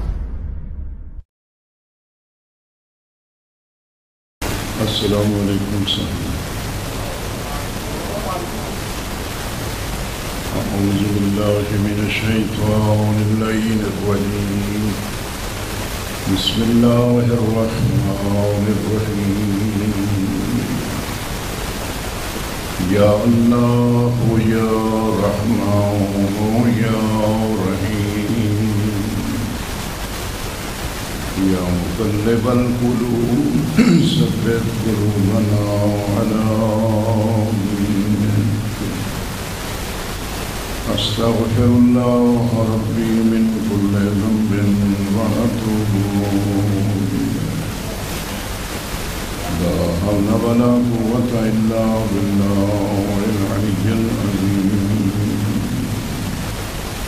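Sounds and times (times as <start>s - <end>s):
low rumble: 0.0s - 1.3s
steady rushing hiss: 4.4s - 57.0s
man chanting: 4.5s - 9.2s, 10.4s - 15.4s, 16.1s - 21.2s, 22.8s - 29.8s, 31.3s - 39.4s, 40.8s - 48.3s, 49.3s - 57.0s
man's voice: 4.7s - 9.0s, 10.5s - 15.2s, 16.2s - 21.2s, 22.8s - 29.7s, 31.3s - 39.4s, 40.8s - 47.9s, 49.4s - 56.4s.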